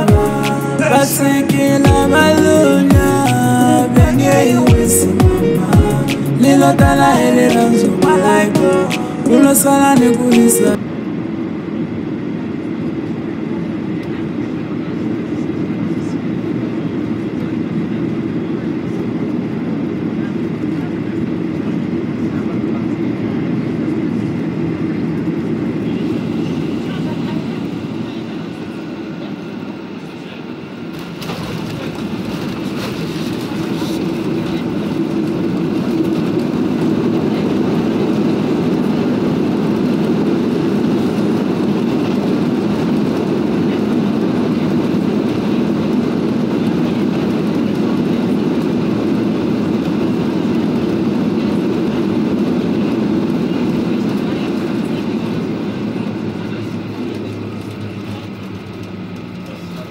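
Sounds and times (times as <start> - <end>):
airliner cabin rumble: 0.0 - 59.9.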